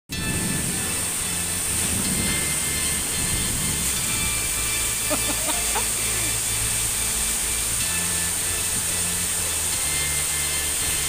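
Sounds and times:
heavy rain pouring: 0.1 - 11.0
wind rumble on microphone: 0.1 - 11.0.

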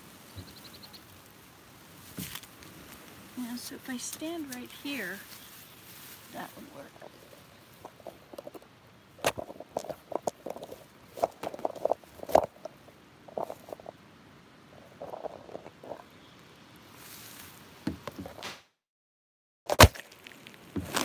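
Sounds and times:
plants rustling against camera: 0.0 - 14.0, 14.7 - 18.5, 19.7 - 21.0.

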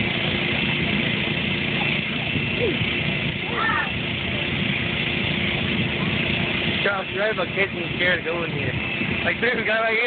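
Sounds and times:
blower fan drone: 0.0 - 10.0
low hum: 0.0 - 10.0.

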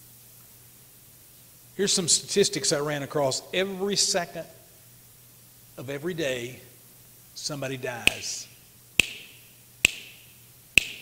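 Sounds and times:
man snapping fingers: 9.0 - 10.2, 10.8 - 11.0.

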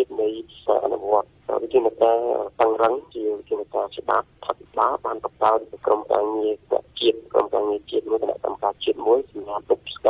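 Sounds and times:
presenter talking on radio: 0.0 - 10.0.

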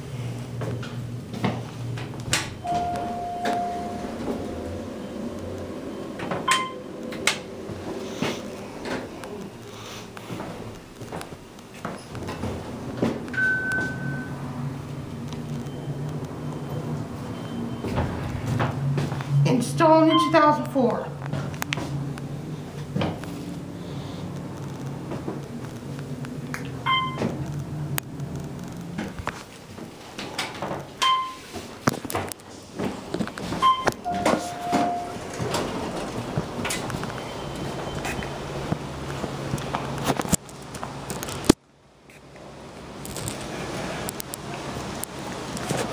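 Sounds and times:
elevator door sounds: 0.0 - 40.4
elevator low hum: 0.0 - 45.9
short beeps: 2.6 - 5.2, 6.0 - 6.9, 13.4 - 14.4, 20.1 - 20.5, 26.9 - 27.2, 31.0 - 31.4, 33.6 - 35.2
elevator chime tone: 2.6 - 8.0, 13.3 - 20.6, 26.8 - 27.4, 31.0 - 31.5, 33.6 - 38.6.

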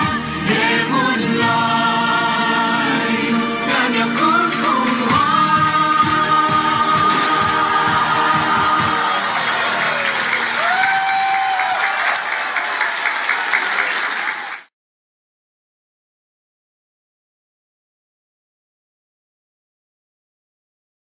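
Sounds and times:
choir and band holding a chord: 0.0 - 10.6
audience applause: 6.6 - 14.7.

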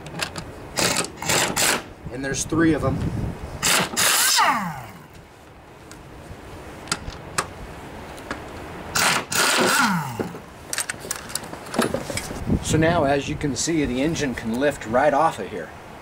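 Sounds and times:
air impact wrench whining: 0.8 - 1.9, 3.6 - 5.0, 9.0 - 10.4.

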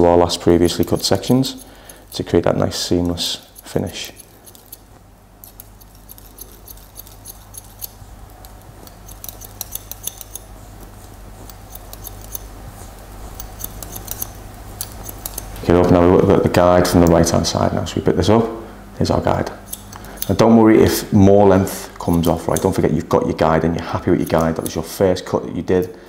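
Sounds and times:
low room hum: 0.0 - 26.0
scissors snipping hair: 0.4 - 15.6, 19.5 - 20.5, 22.0 - 22.9, 23.9 - 25.0.

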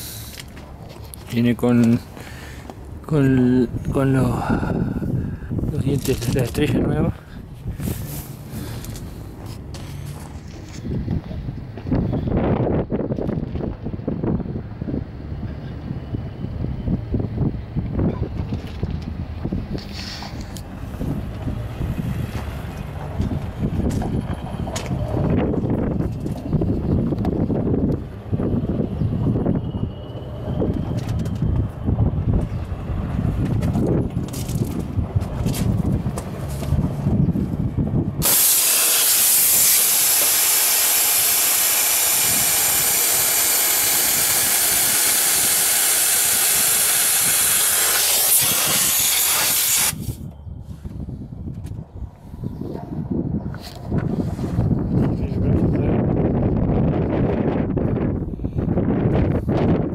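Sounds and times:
compressed air hissing: 0.0 - 0.5, 38.2 - 50.2
wind rumbling on microphone: 0.0 - 59.9.

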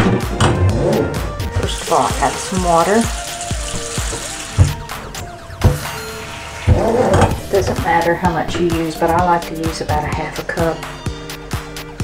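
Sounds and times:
background music: 0.0 - 12.0
faucet running into a sink: 1.6 - 7.7
low thumps: 2.6 - 8.8.

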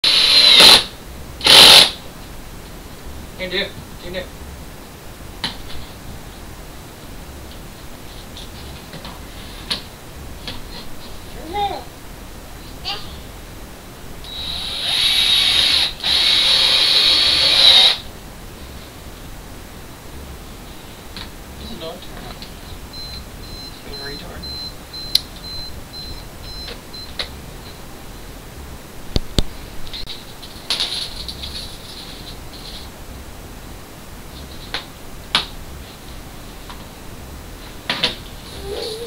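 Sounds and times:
cordless drill into wood: 0.0 - 2.0, 14.3 - 18.0.

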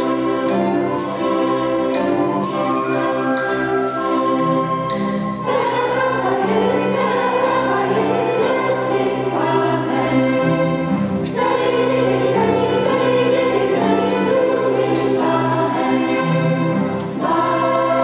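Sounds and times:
children's choir singing: 0.0 - 18.0
violins: 0.0 - 18.0.

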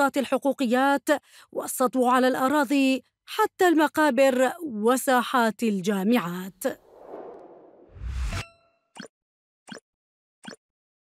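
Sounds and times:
whoosh with low boom: 6.8 - 8.4.

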